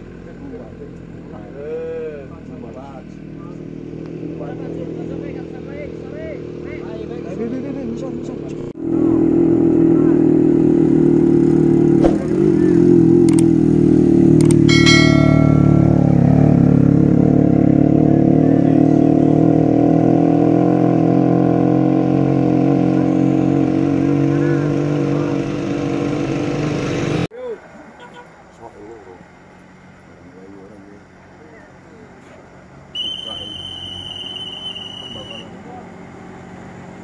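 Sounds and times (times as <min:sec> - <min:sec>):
motorcycle engine drone: 0:00.0 - 0:27.3
brief high-pitched tone: 0:14.7 - 0:16.8.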